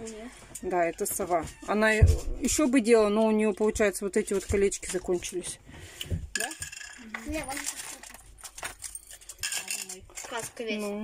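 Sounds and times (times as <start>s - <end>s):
metal keychains jangling: 6.3s - 10.8s.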